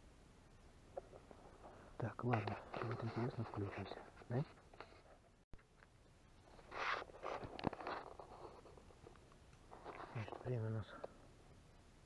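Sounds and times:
clothing rustling against camera: 0:01.0 - 0:05.3, 0:06.5 - 0:10.8.

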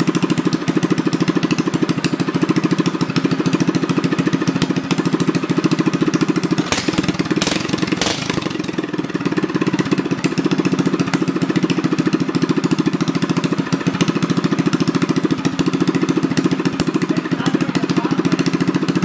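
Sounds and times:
go-kart engine idling: 0:00.0 - 0:19.0
sharp exhaust cracks: 0:06.6 - 0:09.5.

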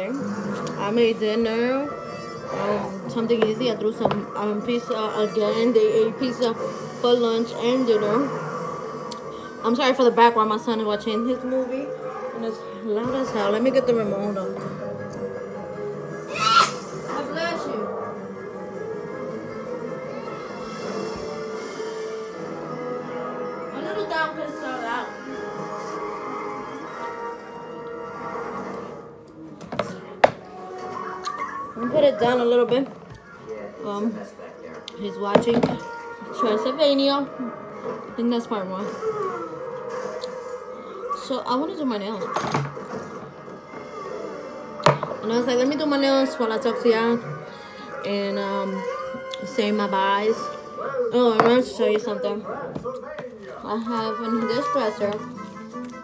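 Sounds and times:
background music from television: 0:00.0 - 0:56.0.

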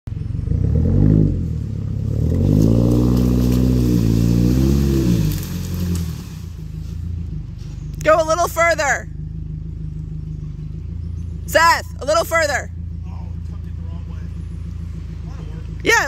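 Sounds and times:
engine revving under load: 0:00.1 - 0:16.0.

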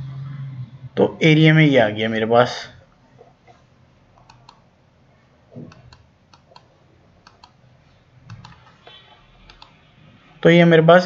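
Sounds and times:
computer mouse clicks: 0:04.2 - 0:04.6, 0:05.6 - 0:07.6, 0:08.3 - 0:08.8, 0:09.4 - 0:09.8.

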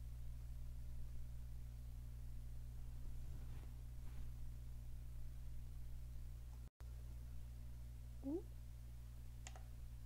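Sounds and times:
low electrical hum: 0:00.0 - 0:10.0
computer mouse click: 0:09.4 - 0:09.7.

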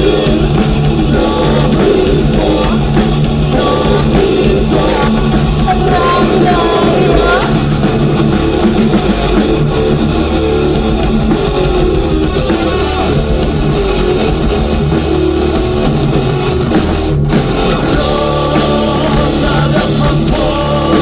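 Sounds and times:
bass: 0:00.0 - 0:21.0
distorted electric guitars: 0:00.0 - 0:21.0
drum kit: 0:00.0 - 0:21.0.

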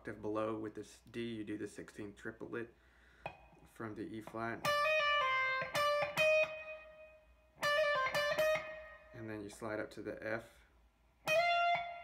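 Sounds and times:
electric guitar riff: 0:04.6 - 0:09.2, 0:11.3 - 0:12.0.

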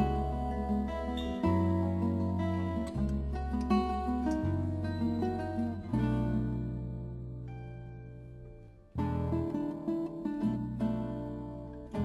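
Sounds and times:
held bass notes: 0:00.0 - 0:12.0
plucked acoustic guitar: 0:00.0 - 0:12.0.

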